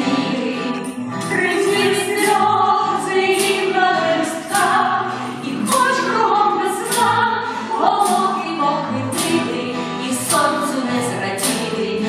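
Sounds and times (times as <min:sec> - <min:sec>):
vocal group singing in harmony: 0:00.0 - 0:12.0.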